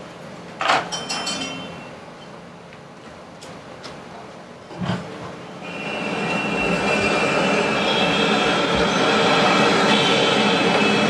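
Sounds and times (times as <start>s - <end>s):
train wheels squealing on rails: 5.6s - 11.0s.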